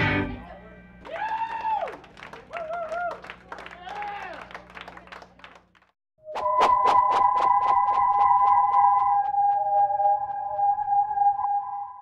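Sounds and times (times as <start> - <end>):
high whooping cheers: 1.0 - 4.6
audience clapping: 1.0 - 6.0.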